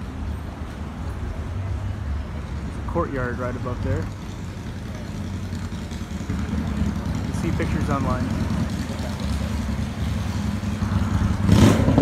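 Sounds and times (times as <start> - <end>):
vehicle engine idling: 1.6 - 12.0.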